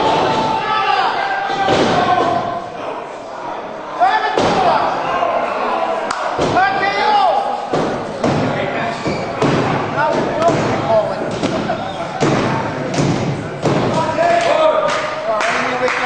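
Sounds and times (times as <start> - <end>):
people shouting: 0.0 - 3.0.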